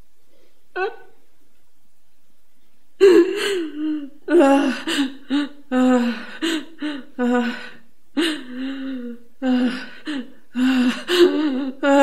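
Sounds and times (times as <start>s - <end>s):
woman sobbing: 3.0s - 12.0s.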